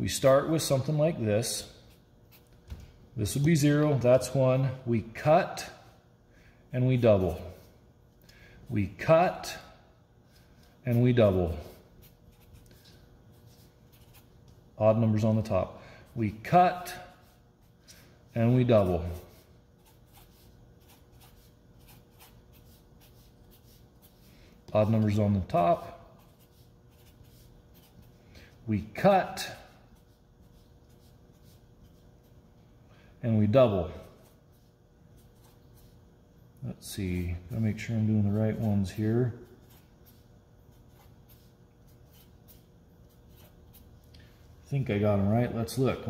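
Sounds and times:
felt-tip marker scratching on paper: 11.7s - 14.5s, 18.9s - 24.3s, 26.2s - 28.1s, 29.6s - 32.3s, 39.5s - 43.9s.

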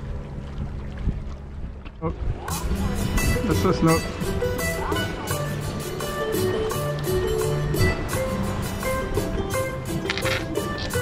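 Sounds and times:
wind rumbling on microphone: 0.0s - 5.8s
water sloshing against rocks: 0.0s - 11.0s.

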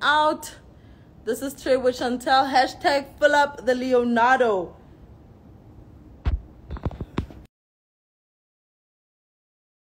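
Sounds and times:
smartphone handling thumps and taps: 6.2s - 7.4s.

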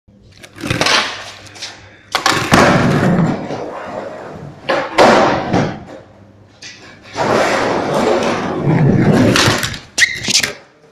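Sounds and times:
skateboard wheels rolling on concrete: 7.1s - 10.5s.

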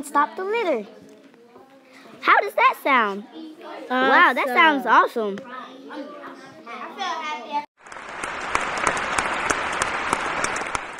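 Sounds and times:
audience applause: 7.8s - 10.9s.

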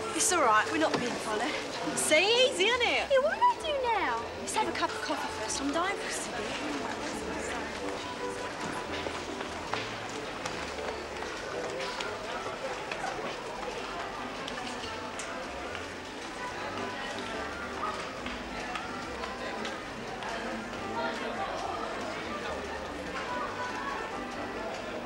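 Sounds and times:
background music: 0.0s - 25.0s
shoppers chattering: 0.0s - 25.0s
footsteps and taps: 6.5s - 20.8s.

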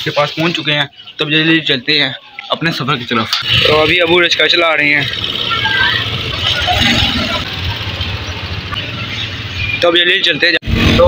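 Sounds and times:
motorcycle rickshaw engine running: 3.4s - 10.4s.

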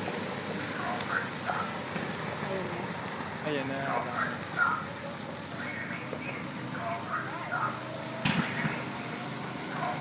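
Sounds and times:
distant go-kart engines running: 0.0s - 10.0s.

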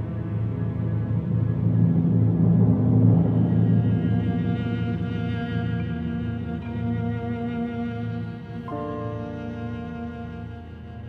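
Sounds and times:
orchestra playing low sustained notes: 0.0s - 11.0s.

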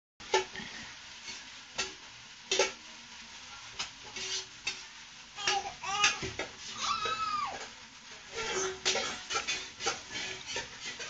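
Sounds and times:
food sizzling in a pan: 0.2s - 11.0s
spatula scraping and knocking pan: 1.2s - 2.8s, 3.8s - 11.0s.

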